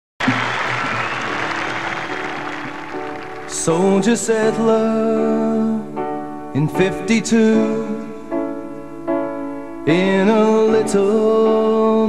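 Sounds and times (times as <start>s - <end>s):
audience applause: 0.2s - 4.2s
band playing instrumental: 0.2s - 4.2s.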